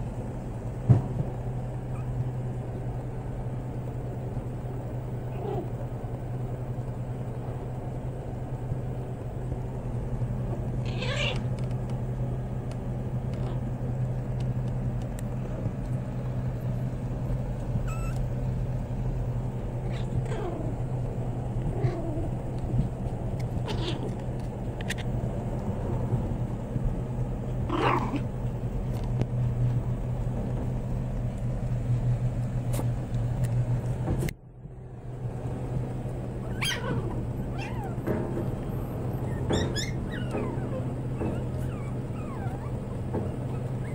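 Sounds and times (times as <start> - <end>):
puppies whimpering and squeaking: 1.8 - 2.2, 17.8 - 18.2, 19.9 - 20.8, 36.4 - 43.9.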